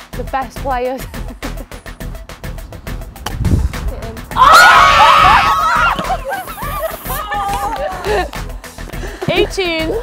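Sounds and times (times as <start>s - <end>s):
background music with steady beat: 0.0s - 10.0s
women screaming excitedly: 4.3s - 8.0s.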